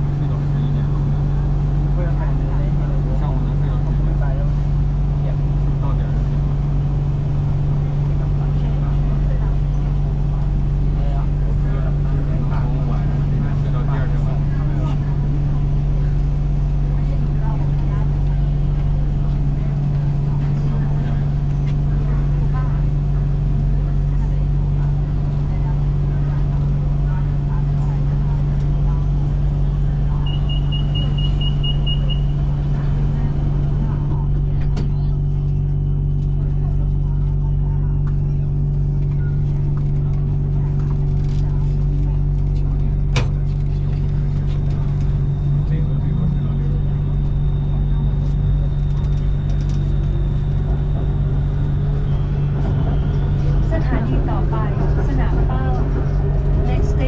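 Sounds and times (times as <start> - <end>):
train car low hum: 0.0 - 57.0
high door warning beeps: 30.2 - 32.5.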